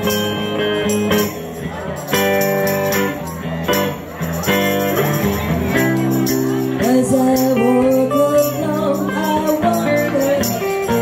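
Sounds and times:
electric guitar chords: 0:00.0 - 0:11.0
tambourine shaken and struck: 0:00.0 - 0:11.0.

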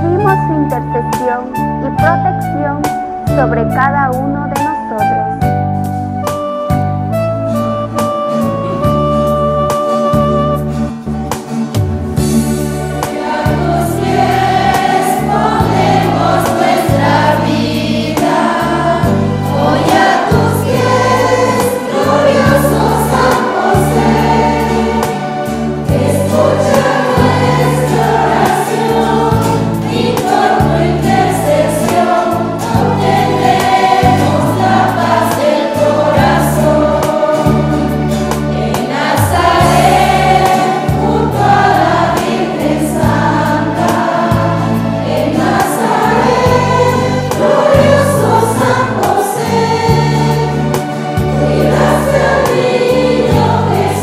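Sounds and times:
held low accompaniment notes: 0:00.0 - 0:11.2
church choir singing a hymn: 0:12.2 - 0:54.0.

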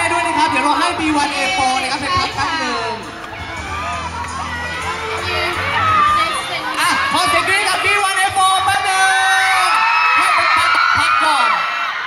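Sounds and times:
crowd screaming and cheering: 0:00.0 - 0:12.0
music playing: 0:00.0 - 0:12.0.

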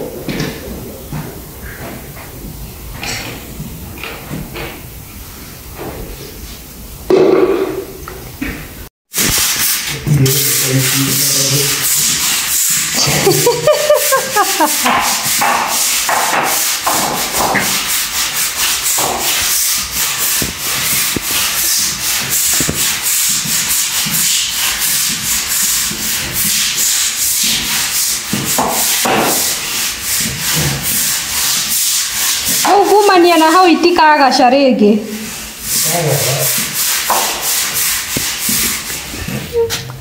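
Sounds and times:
broom scrubbing wet tile floor: 0:09.1 - 0:40.0.

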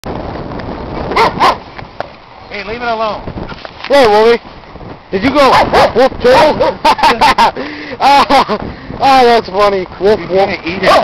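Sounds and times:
steady rushing noise: 0:00.0 - 0:11.0
dog barking: 0:01.1 - 0:01.6, 0:05.4 - 0:06.0, 0:10.8 - 0:11.0.

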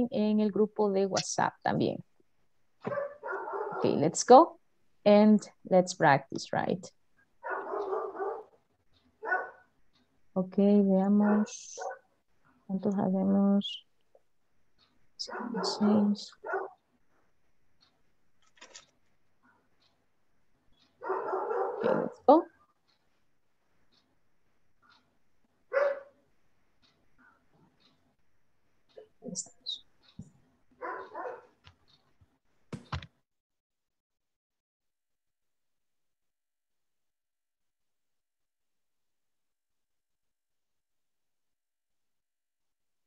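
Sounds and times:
dog barking: 0:02.8 - 0:04.0, 0:07.4 - 0:08.6, 0:09.2 - 0:09.7, 0:11.2 - 0:12.0, 0:15.2 - 0:16.8, 0:21.0 - 0:22.3, 0:25.7 - 0:26.2, 0:30.8 - 0:31.6.

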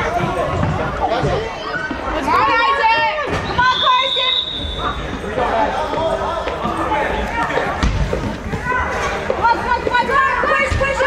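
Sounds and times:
children and spectators calling out: 0:01.6 - 0:05.1.

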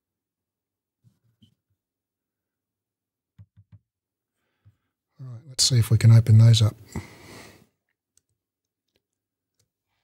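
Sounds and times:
short breath: 0:06.9 - 0:07.7.

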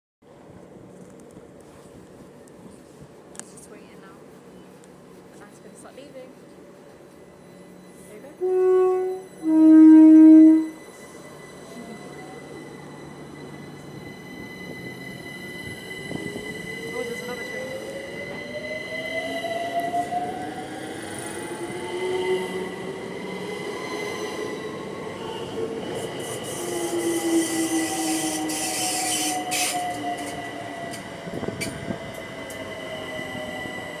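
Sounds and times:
steady high tone: 0:07.0 - 0:27.8.

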